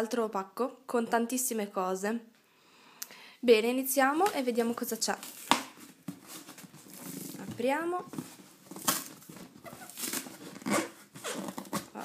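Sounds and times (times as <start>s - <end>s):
cardboard box ripping: 8.1s - 12.0s.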